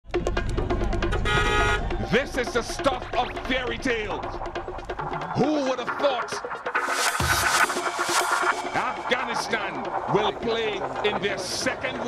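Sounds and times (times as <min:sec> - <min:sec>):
music: 0:00.0 - 0:12.0
street traffic: 0:00.1 - 0:02.1
car horn: 0:01.1 - 0:02.0.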